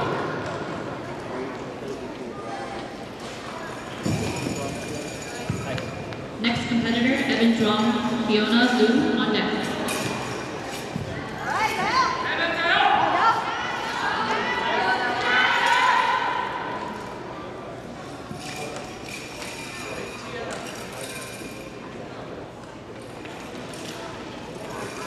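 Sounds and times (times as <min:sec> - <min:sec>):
voices echoing in a hall: 0:00.0 - 0:25.0.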